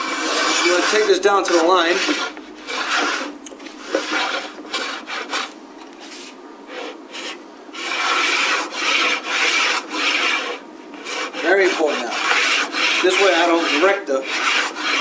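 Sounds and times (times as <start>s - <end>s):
plane rasping on wood: 0.0s - 5.5s, 6.1s - 15.0s.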